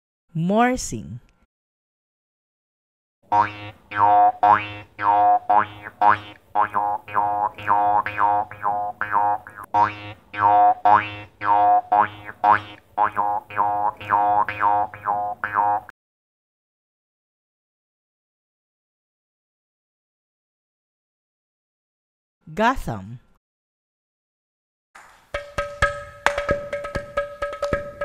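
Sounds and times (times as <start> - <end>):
jaw harp twanging: 3.3 - 15.9.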